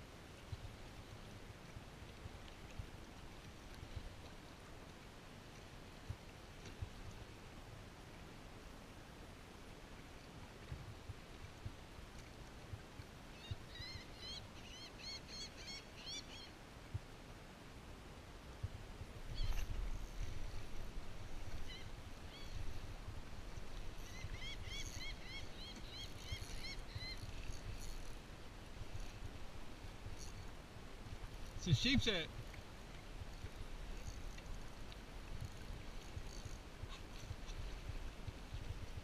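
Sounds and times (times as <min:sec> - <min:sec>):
bird piping chirps: 0:24.0 - 0:27.6.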